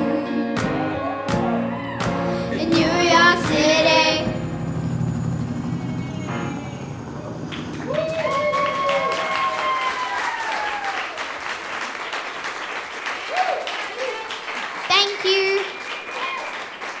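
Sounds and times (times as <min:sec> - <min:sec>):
crowd cheering: 0:00.6 - 0:02.4, 0:07.2 - 0:17.0
audience applauding: 0:07.5 - 0:17.0.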